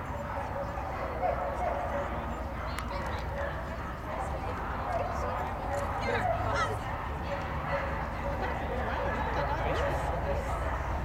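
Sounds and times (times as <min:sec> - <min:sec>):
people talking: 0:01.0 - 0:11.0.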